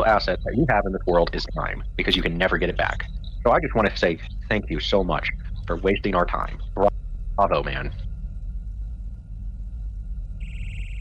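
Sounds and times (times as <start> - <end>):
high steady buzzing tone: 0.0 - 11.0
low rumbling hum: 0.0 - 11.0.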